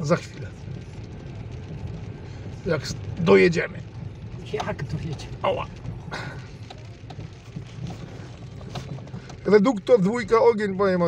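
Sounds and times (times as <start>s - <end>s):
engine and tyres droning: 0.0s - 11.0s
rain on windscreen: 0.0s - 11.0s.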